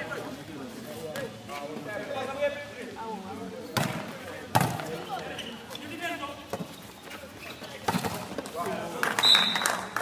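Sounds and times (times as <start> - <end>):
volleyball struck by hands: 3.8 - 4.9.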